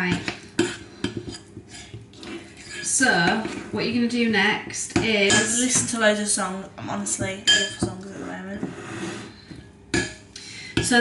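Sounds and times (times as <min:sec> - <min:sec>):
utensil scraping metal bowl: 0:00.6 - 0:04.1, 0:07.0 - 0:09.5.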